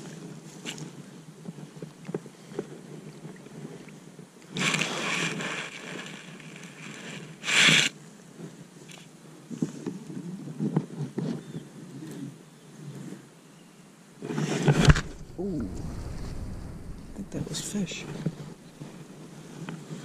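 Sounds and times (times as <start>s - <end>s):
loud rushes of noise: 14.7s - 19.2s
low rubbing handling noise: 14.7s - 19.3s.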